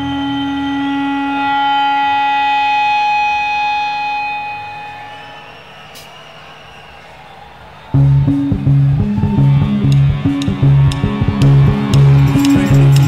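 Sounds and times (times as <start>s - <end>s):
band holding sustained chord: 0.0s - 5.3s.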